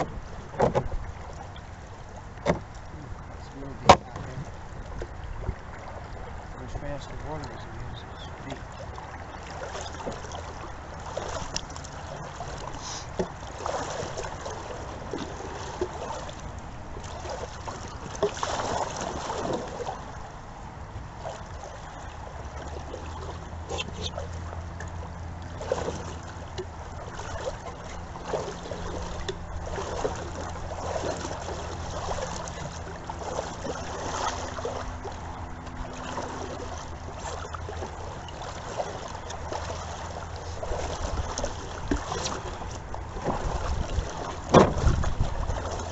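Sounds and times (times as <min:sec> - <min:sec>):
paddles splashing in water: 0:00.0 - 0:45.9.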